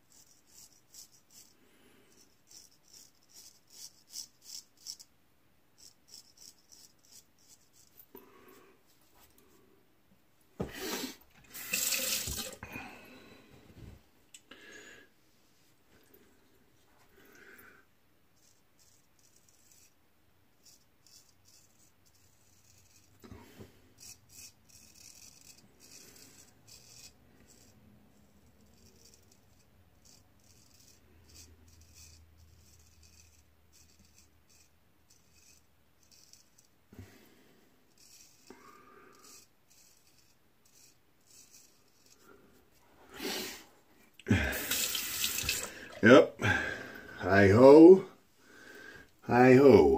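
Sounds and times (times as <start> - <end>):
razor scraping stubble: 2.5 - 5.1, 5.8 - 8.0, 18.4 - 20.0, 20.6 - 27.8, 28.4 - 36.7
tap running into sink: 11.5 - 12.6, 44.7 - 45.7.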